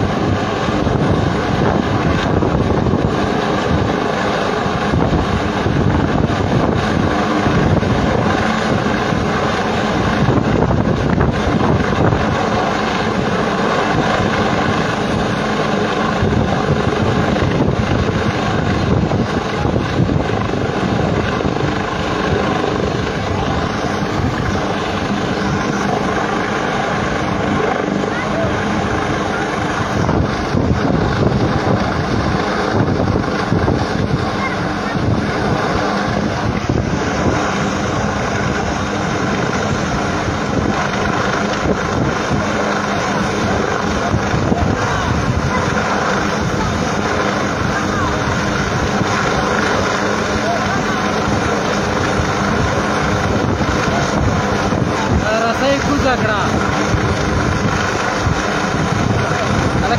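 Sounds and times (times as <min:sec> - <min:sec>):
helicopter hovering: 0:00.0 - 0:59.9.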